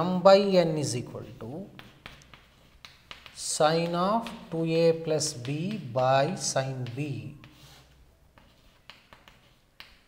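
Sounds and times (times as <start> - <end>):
chalk clicking on chalkboard: 1.3 - 10.0.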